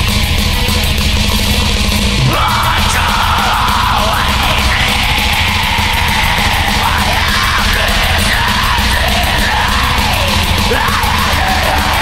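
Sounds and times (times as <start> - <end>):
distorted guitars: 0.0 - 12.0
fast drumming: 0.0 - 12.0
harsh yelled vocals: 1.8 - 12.0.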